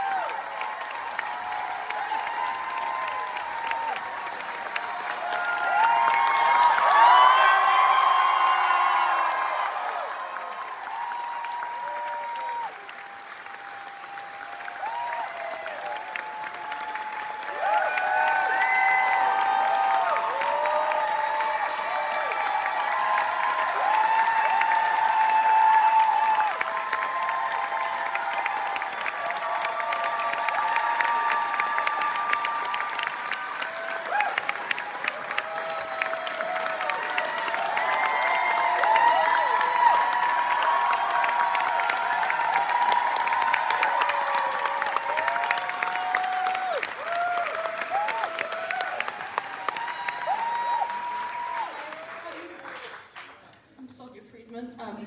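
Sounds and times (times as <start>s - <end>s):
shouts and cheers: 0.0s - 53.0s
audience clapping: 0.0s - 53.9s.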